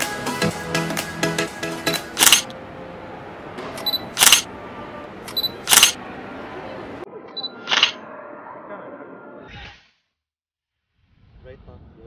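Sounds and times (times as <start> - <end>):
camera shutter firing: 1.9 - 2.5, 3.8 - 4.5, 5.3 - 6.0
short high focus beep: 5.3 - 5.9.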